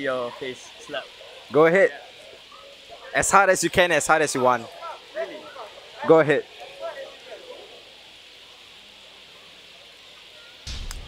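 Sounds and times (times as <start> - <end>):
city street background hiss: 0.0 - 11.0.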